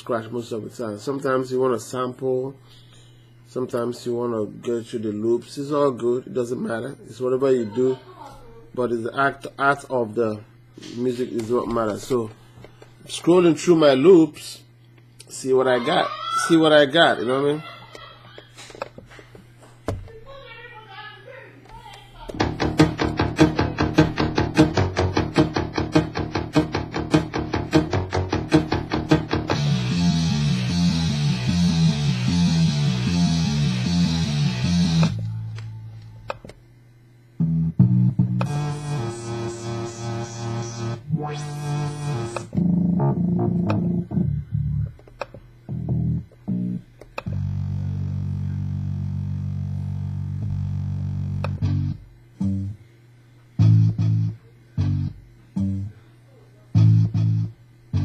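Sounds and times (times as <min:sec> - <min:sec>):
rhythmic music loops: 0:22.3 - 0:35.2, 0:37.4 - 0:44.9
plucked guitar-like and bass sounds: 0:22.3 - 0:35.3, 0:37.4 - 0:52.8, 0:53.6 - 0:56.0, 0:56.8 - 0:58.0.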